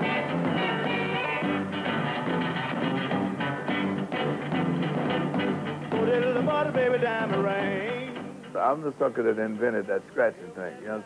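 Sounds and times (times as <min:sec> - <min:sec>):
electric guitar strummed: 0:00.0 - 0:10.2
rock and roll band: 0:00.0 - 0:11.0.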